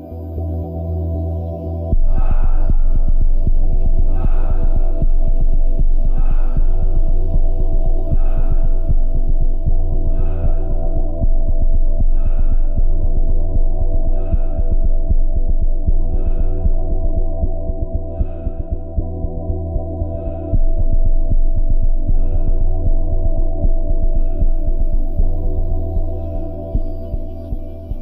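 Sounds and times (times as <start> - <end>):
low throbbing electronic drone: 0.0 - 28.0.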